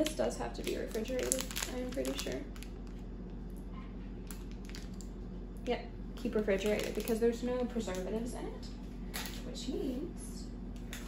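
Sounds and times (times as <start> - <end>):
plastic wrapper crinkling: 0.0 - 3.5, 4.2 - 5.2, 6.4 - 8.0
steady low hum: 0.0 - 11.0.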